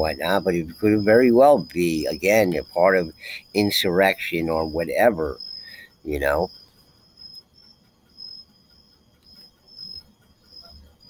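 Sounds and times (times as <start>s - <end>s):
faint high-pitched chirping: 0.0s - 11.0s.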